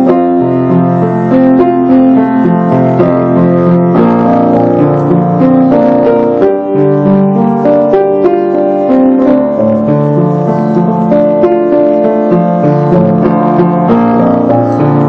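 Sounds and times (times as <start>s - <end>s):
solo piano playing: 0.0s - 15.0s.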